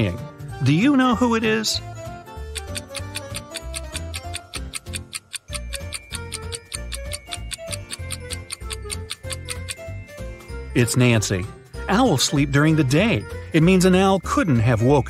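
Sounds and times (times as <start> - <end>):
light background music: 0.0 - 15.0
fast clock-like ticking: 2.4 - 9.8.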